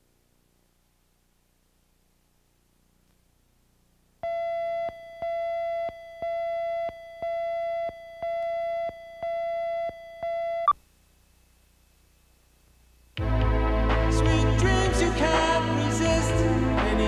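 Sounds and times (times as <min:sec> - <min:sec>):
countdown beeps: 0:04.2 - 0:10.8.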